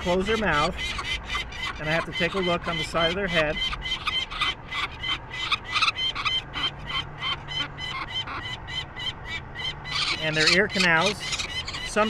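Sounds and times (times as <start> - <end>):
falcon chick harsh distress calls: 0.0 - 12.0.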